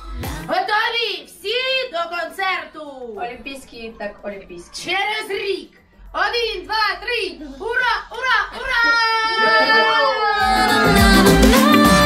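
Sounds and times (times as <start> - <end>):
music with bass line: 0.0 - 0.5, 10.4 - 12.0
voices in the room: 0.4 - 10.4
team cheer: 8.6 - 12.0
woman singing long high note: 10.2 - 12.0.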